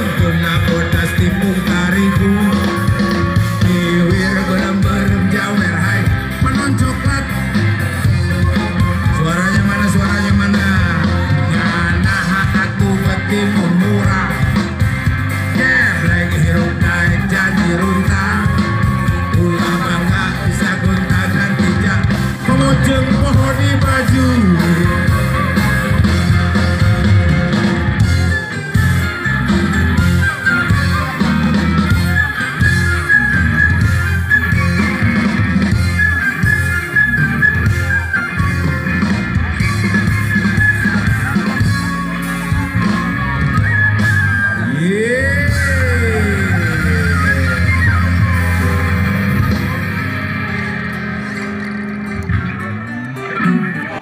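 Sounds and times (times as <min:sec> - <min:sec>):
live band music over pa: 0:00.0 - 0:54.0
swooping pitch slide: 0:28.1 - 0:54.0.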